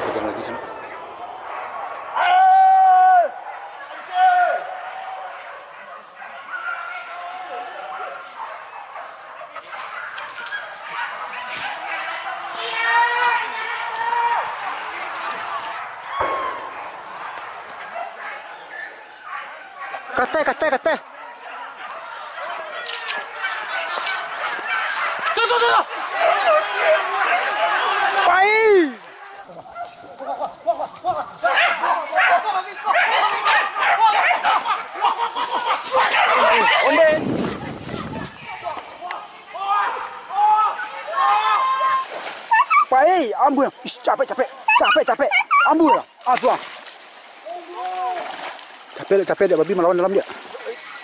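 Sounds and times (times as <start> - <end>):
dogs barking and yelping: 0.8 - 2.5, 3.3 - 28.2, 29.6 - 39.3, 42.4 - 46.3
people calling out: 10.2 - 43.7.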